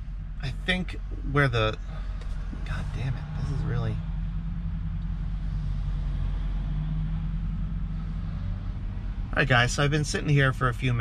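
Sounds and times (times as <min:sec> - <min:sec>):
truck engine idling: 0:00.0 - 0:11.0.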